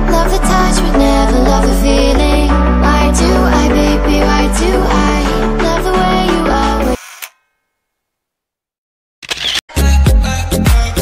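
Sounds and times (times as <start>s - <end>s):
camera shutter click: 9.2s - 9.6s
music with heavy bass beat: 9.7s - 11.0s.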